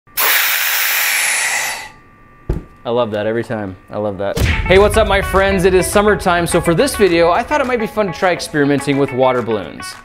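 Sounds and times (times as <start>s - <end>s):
air hissing into vacuum chamber: 0.2s - 2.0s.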